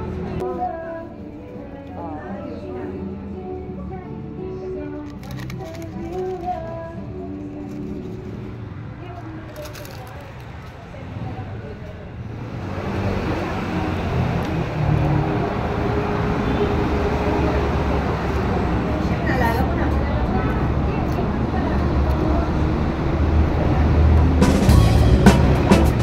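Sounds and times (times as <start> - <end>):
music: 0.0 - 8.7, 23.9 - 26.0
background voices: 0.0 - 24.4
loud steady rushing noise: 7.7 - 26.0.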